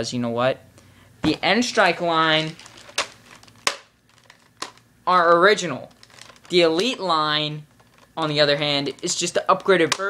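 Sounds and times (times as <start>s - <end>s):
faint rustling: 1.8s - 4.8s, 5.8s - 6.7s, 7.6s - 9.1s.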